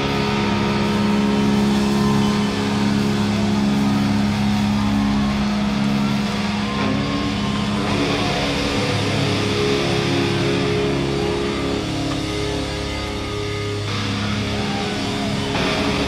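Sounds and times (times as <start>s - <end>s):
distorted electric guitars droning: 0.0s - 16.0s.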